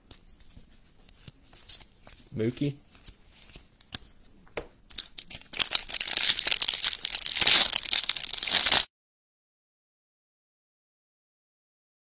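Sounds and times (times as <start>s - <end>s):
foil wrapper tearing and crinkling: 5.0s - 8.9s.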